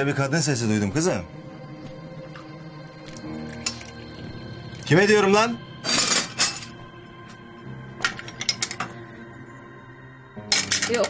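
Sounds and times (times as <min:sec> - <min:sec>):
soft background music: 0:00.0 - 0:11.0
metal kitchenware clinking: 0:05.8 - 0:06.8, 0:08.0 - 0:09.0, 0:10.5 - 0:11.0.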